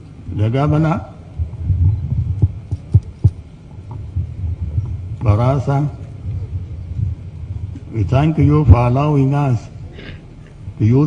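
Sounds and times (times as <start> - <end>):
microphone hum and thumping: 0.0 - 10.9.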